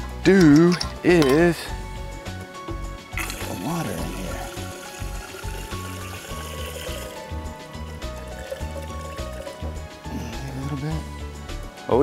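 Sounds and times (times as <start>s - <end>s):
water trickling into plastic container: 3.2s - 7.2s, 8.1s - 9.6s.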